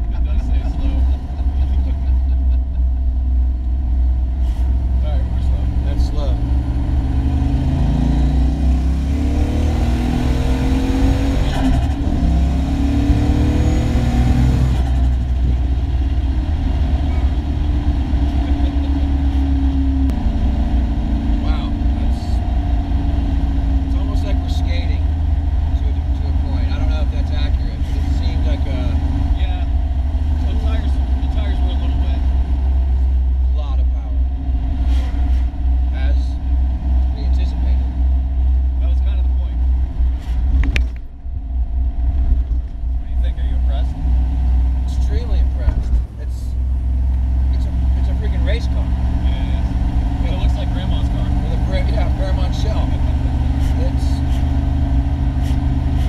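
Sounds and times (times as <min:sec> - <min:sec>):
car engine running: 0:00.0 - 0:56.0
road noise: 0:00.0 - 0:56.0.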